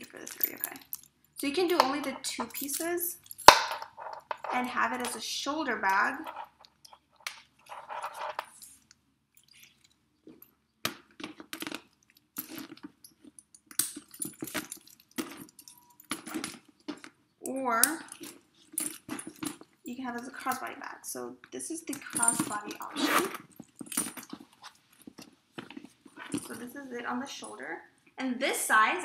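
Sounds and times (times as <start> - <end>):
person speaking: 0.0 - 3.2, 4.4 - 6.4, 19.9 - 23.3, 26.4 - 29.0
metal clasps clicking: 0.0 - 5.2.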